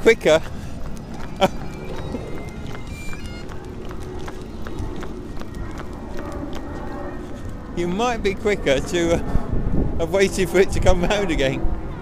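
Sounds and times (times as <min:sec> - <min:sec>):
footsteps on wet pavement: 0:00.0 - 0:08.4.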